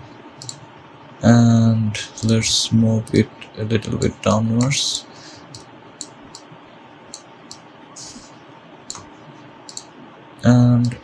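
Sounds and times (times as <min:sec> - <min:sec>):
faint steady hiss: 0:00.0 - 0:11.0
mouse and keyboard clicks: 0:09.7 - 0:09.9.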